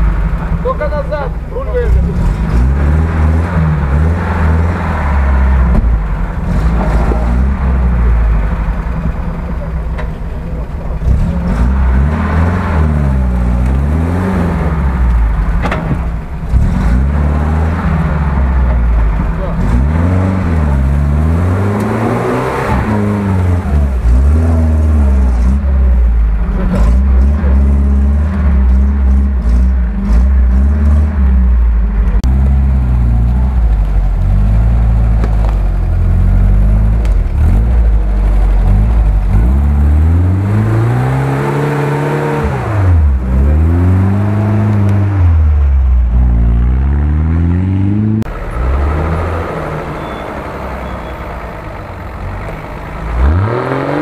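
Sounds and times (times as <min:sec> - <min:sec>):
off-road vehicle engine revving: 0:00.0 - 0:54.0
second vehicle engine: 0:00.0 - 0:54.0.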